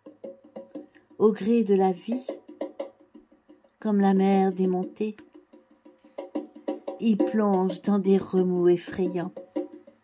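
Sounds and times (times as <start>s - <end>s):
light tapping rhythm of pitched notes: 0.0s - 10.0s.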